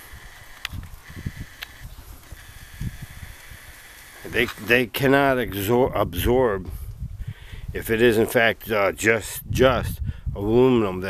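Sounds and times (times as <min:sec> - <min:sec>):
faint clicks: 0:00.4 - 0:04.3.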